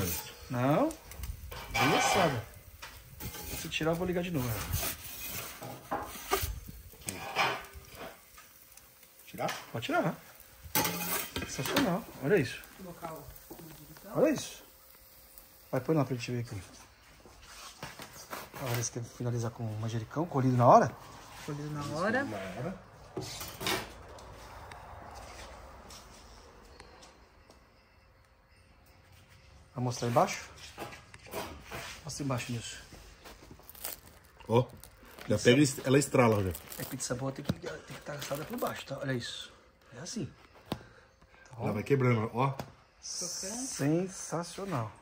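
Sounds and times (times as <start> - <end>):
metal peel scraping on stone: 0.0 - 0.8, 1.5 - 8.6, 10.7 - 12.0.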